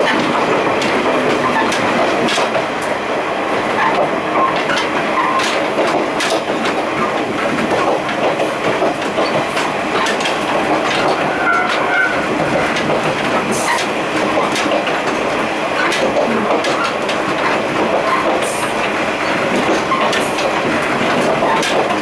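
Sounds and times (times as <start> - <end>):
train wheels on rails: 0.0 - 22.0.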